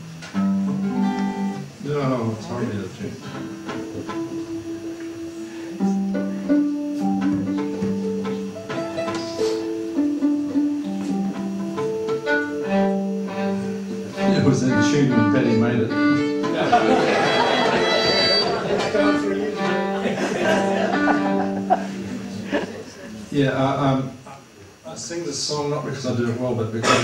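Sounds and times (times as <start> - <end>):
string instruments being tuned: 0.0 - 25.1.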